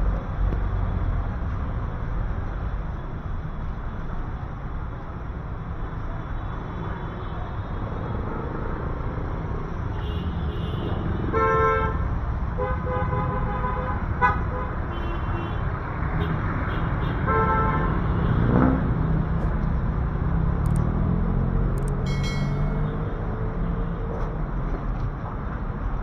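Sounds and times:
street traffic rumble: 0.0 - 26.0
engine revving: 18.2 - 19.6.

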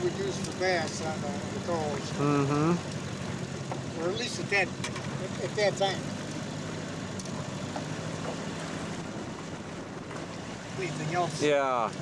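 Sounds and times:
outboard motor running: 0.0 - 12.0
water around boat: 0.0 - 12.0
wind: 0.0 - 12.0.

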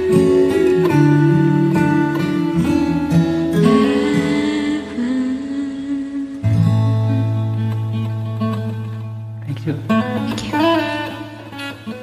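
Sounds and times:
acoustic guitar ballad: 0.0 - 12.0.

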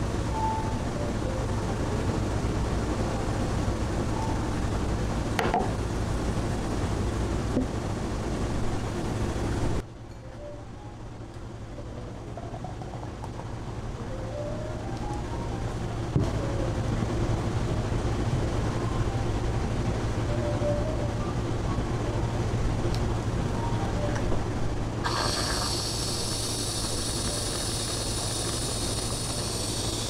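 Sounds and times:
steady low rumble: 10.6 - 30.0.

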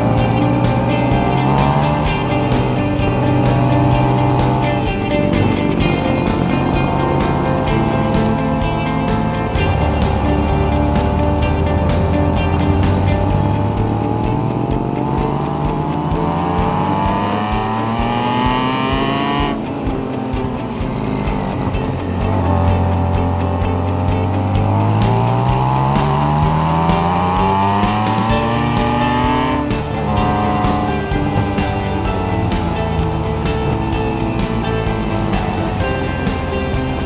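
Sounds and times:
background music with steady beat: 0.0 - 37.0
motorcycle engine accelerating: 0.0 - 37.0.

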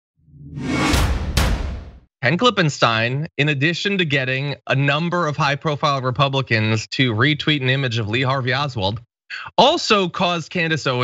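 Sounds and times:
whoosh: 0.3 - 2.0
deep low rumble: 0.4 - 1.9
sharp strikes: 0.5 - 2.1.

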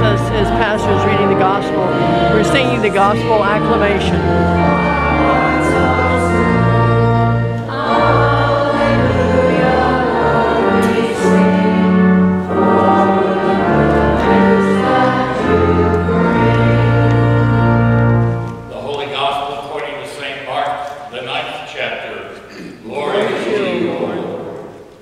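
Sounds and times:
congregation singing a hymn: 0.0 - 20.4, 22.8 - 25.0
organ accompaniment: 0.0 - 20.4.

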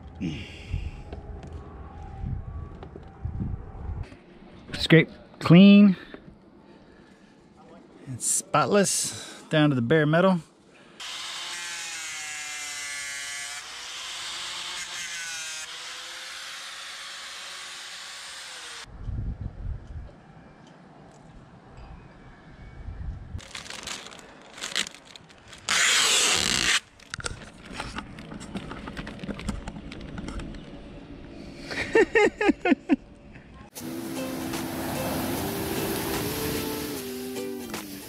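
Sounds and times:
power sander whining: 33.8 - 37.4.

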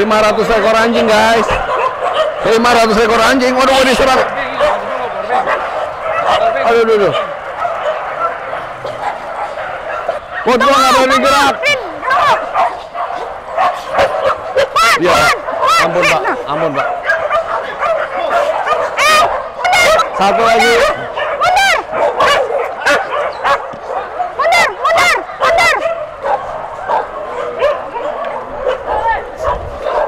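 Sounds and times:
pack of dogs barking and whining: 0.0 - 30.0
short sharp dog barks: 12.0 - 20.1, 20.8 - 30.0.

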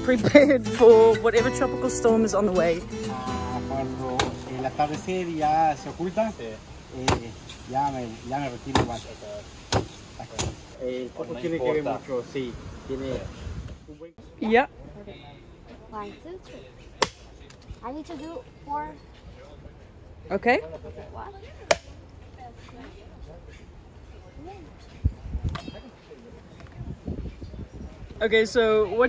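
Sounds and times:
machete chopping coconut: 7.0 - 7.4, 8.7 - 9.1, 9.7 - 10.6, 17.0 - 17.3, 21.7 - 22.0.

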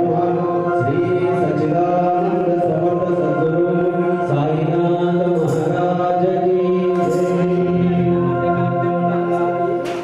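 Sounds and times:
held musical accompaniment: 0.0 - 10.0
person chanting: 0.0 - 10.0.

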